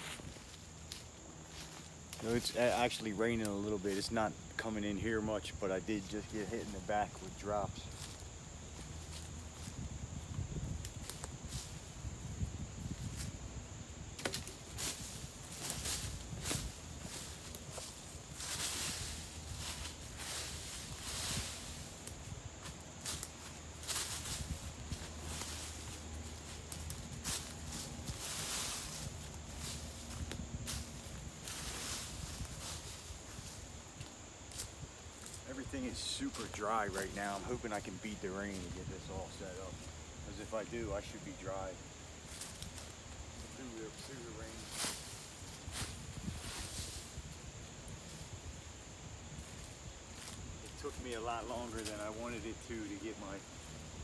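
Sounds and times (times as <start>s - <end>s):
boots kicking dry leaves: 5.7s - 9.9s, 14.2s - 39.8s, 40.5s - 47.3s
shuffling footsteps: 14.2s - 48.3s.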